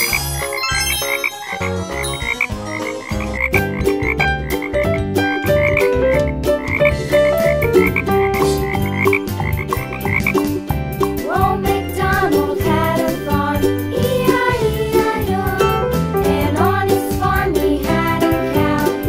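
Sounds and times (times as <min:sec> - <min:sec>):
cheerful children's music: 0:00.0 - 0:19.0.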